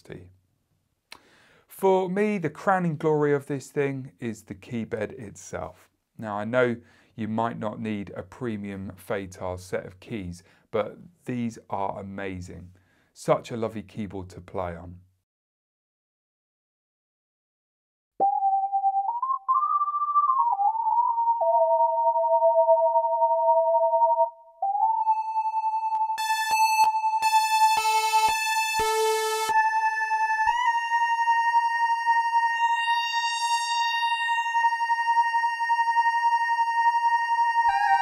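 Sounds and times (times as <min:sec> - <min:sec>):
synthesizer lead with pitch glides: 0:18.2 - 0:38.0.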